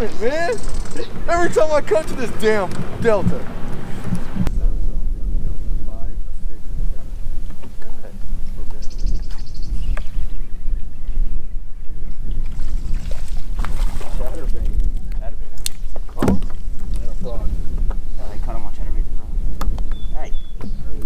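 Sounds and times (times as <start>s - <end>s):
water lapping against boat hull: 0.0s - 4.5s, 12.1s - 21.0s
wind buffeting microphone: 0.0s - 21.0s.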